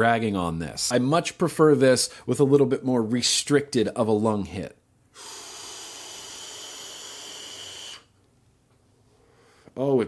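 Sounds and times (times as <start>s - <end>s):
vape drag hiss with whistle: 5.2s - 8.1s.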